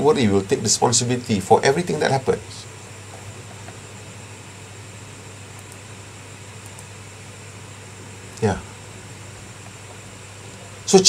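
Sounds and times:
room hum and hiss: 0.0 - 11.0
faint clicks: 5.5 - 5.8, 6.6 - 6.9.

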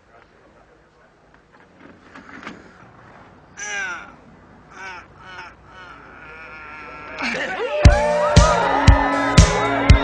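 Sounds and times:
strained cries of effort: 3.5 - 9.3.

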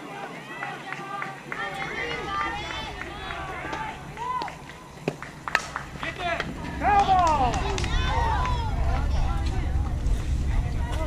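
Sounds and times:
girls cheering and chanting: 0.0 - 4.8, 6.8 - 9.4
loud shouting: 0.0 - 4.9, 6.0 - 9.7
bat cracking ball: 2.9 - 8.0.

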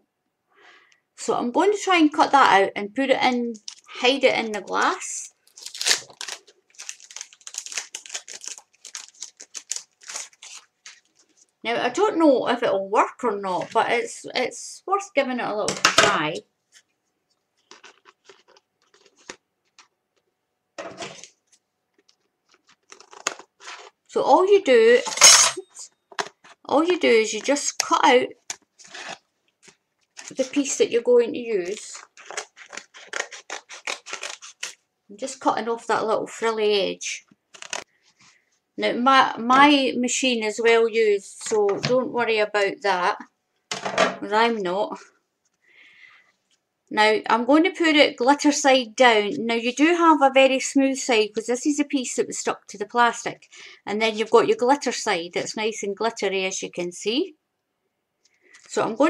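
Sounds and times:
glitter sheet crinkling and crackling: 3.3 - 11.6
scissors snipping: 31.7 - 34.8.

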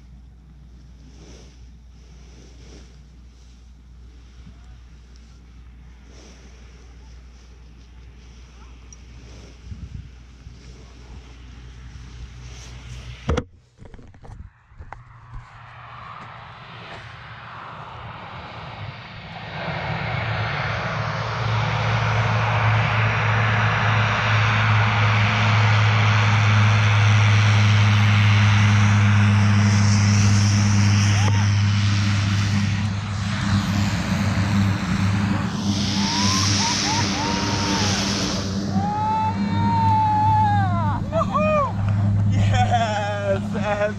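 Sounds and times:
propeller aircraft engine droning: 0.0 - 43.9.

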